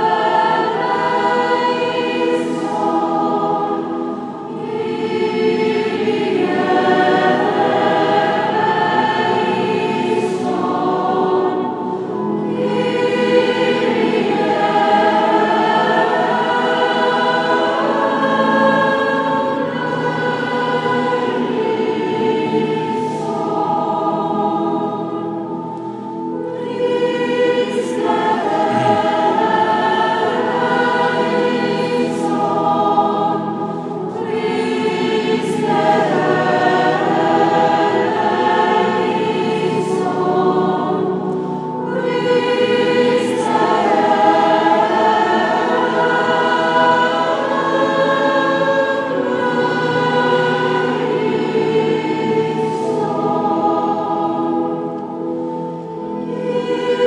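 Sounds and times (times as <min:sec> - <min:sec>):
church choir singing a hymn: 0:00.0 - 0:57.0.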